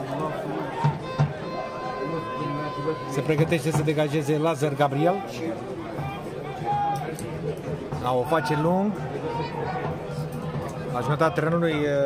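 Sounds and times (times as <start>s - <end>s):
stadium crowd: 0.0s - 12.0s
short beats: 0.7s - 4.3s.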